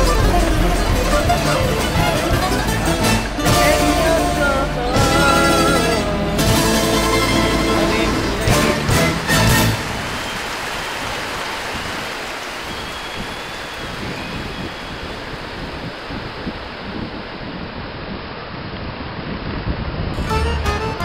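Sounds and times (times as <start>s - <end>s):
surf breaking on rocky shore: 0.0s - 18.0s
wind on microphone: 9.7s - 21.0s.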